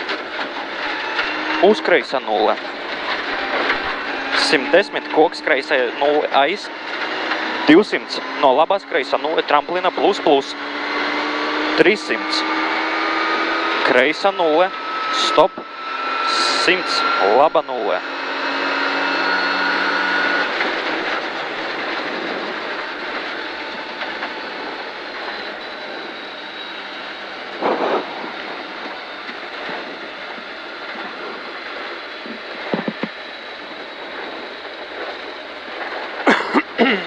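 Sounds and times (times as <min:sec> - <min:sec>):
tyres roaring on gravel: 0:00.0 - 0:37.0
car engine high note: 0:00.6 - 0:35.4
wind noise: 0:20.5 - 0:36.8.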